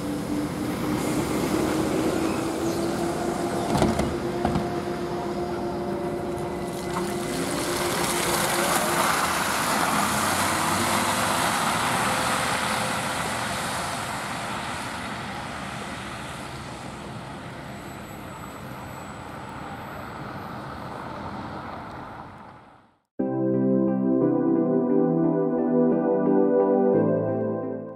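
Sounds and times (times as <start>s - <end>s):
trolleybus electric drive whine: 0.0s - 23.0s
tyres on wet slushy road: 0.0s - 23.0s.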